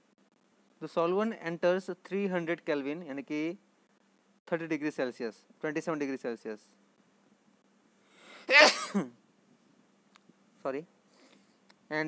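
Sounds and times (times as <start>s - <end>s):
breath in: 8.0s - 8.5s
man coughing: 8.4s - 9.2s.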